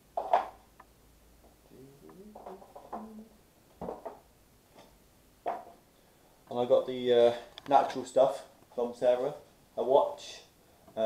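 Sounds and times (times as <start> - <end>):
man murmuring softly: 1.7 - 3.4.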